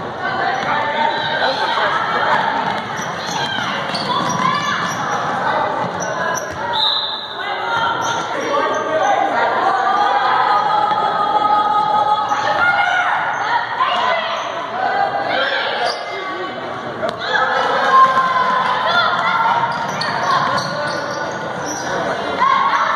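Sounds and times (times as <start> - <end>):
people shouting in gymnasium: 0.0 - 22.9.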